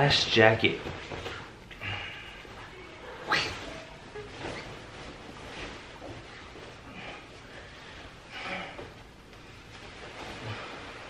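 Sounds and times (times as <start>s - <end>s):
nylon jacket rustling: 1.0s - 11.0s.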